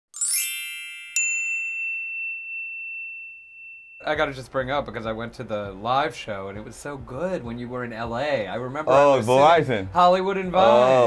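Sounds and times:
bell-like chime sting: 0.2 - 4.4
bright ding: 0.2 - 4.5.

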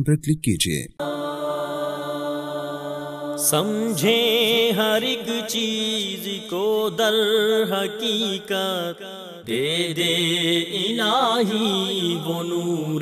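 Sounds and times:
chanted vocal music: 1.0 - 13.0.

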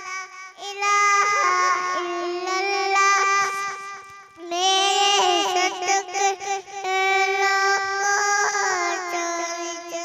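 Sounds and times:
girl singing unaccompanied: 0.0 - 10.0.

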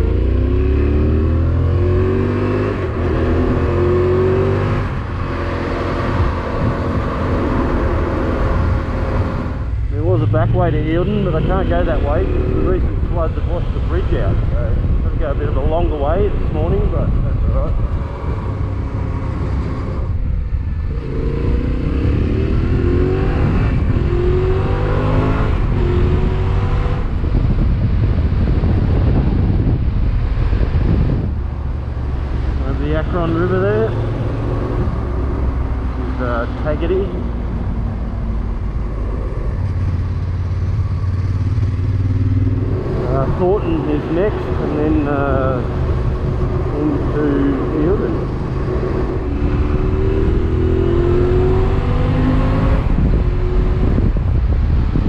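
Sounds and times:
motorcycle engine accelerating: 0.0 - 55.0
wind and road noise: 0.0 - 55.0.

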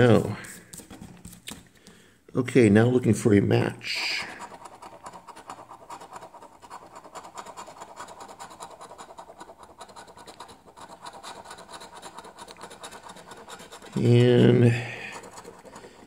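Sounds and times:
coin scraping scratch card: 4.0 - 16.0.

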